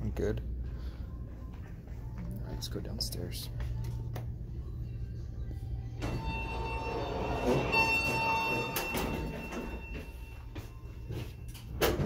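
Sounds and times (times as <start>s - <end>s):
elevator doors sliding open: 6.0s - 10.4s.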